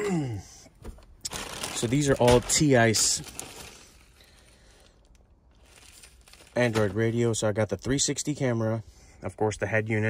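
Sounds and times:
plastic packaging rustling: 0.8 - 7.4.

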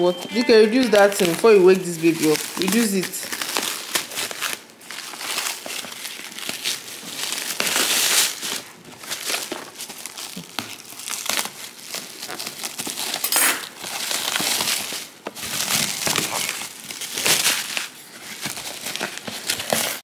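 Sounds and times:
plastic packaging crinkling: 0.3 - 20.0
paper rustling: 0.7 - 20.0.

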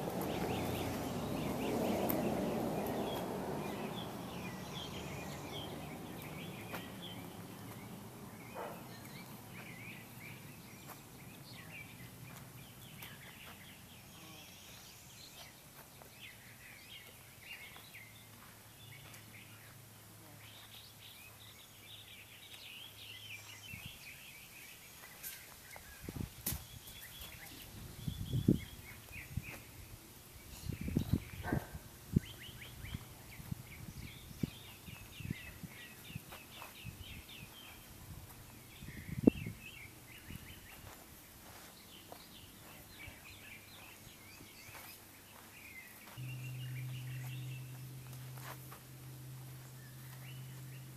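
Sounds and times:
birds chirping and singing: 0.0 - 50.9
low thumps: 46.2 - 50.9.

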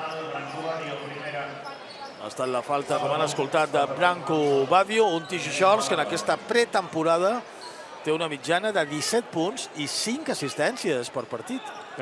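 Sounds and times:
people talking in a hall: 0.0 - 12.0.

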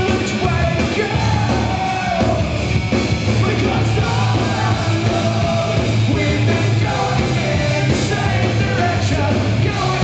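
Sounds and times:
drums: 0.0 - 10.0
rock band playing live: 0.0 - 10.0.

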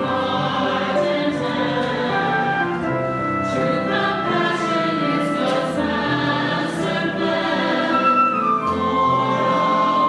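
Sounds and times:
church choir singing: 0.0 - 10.0
flute playing: 2.0 - 6.0, 7.6 - 10.0.

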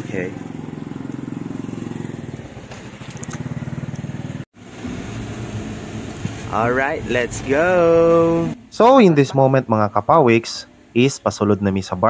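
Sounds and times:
car engine running low: 0.0 - 8.8
engine running with fast pulse: 0.0 - 8.8.

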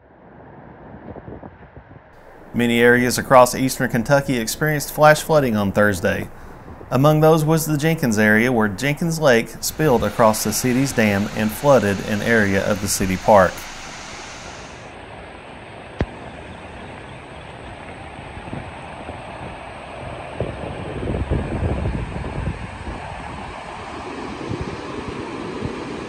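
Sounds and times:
floodwater rushing: 2.2 - 14.9.

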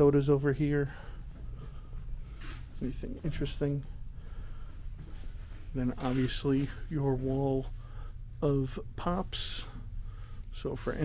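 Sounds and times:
man speaking: 0.0 - 1.2, 2.8 - 4.0, 5.7 - 7.8, 8.4 - 9.8, 10.5 - 11.0
low room rumble: 0.0 - 11.0
faint breath: 0.8 - 2.7, 3.8 - 5.6, 7.8 - 8.3, 9.6 - 10.6.

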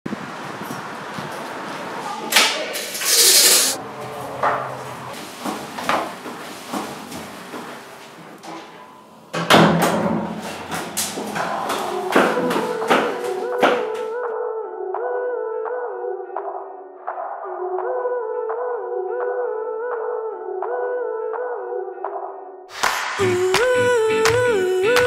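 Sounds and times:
short loud hiss: 2.9 - 3.8.

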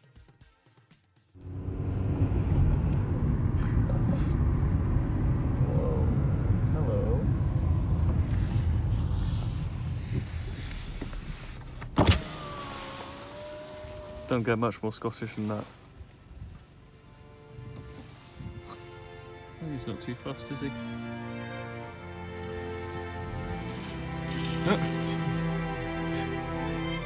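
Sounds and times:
car cabin road and engine noise: 1.4 - 27.0
power window motor whine: 10.9 - 14.4.

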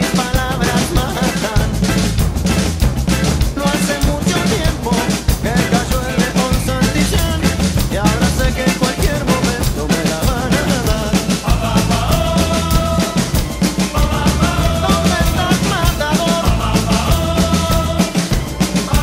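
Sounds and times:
drum kit playing: 0.0 - 19.0
rock backing track: 0.0 - 19.0.

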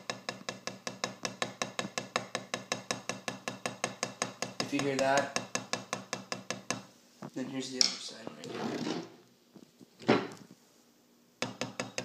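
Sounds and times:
drumstick tapping practice pad: 0.0 - 6.9, 11.4 - 12.0.

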